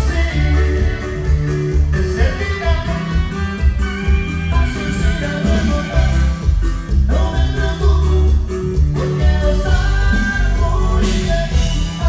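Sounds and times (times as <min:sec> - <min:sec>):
saxophone melody: 0:00.0 - 0:06.8
button accordion melody: 0:00.0 - 0:12.0.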